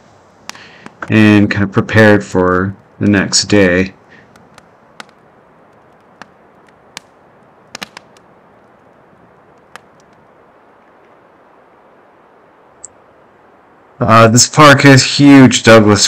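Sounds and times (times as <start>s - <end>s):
campfire crackling and popping: 0.0s - 12.4s
faint even hiss: 0.0s - 16.0s.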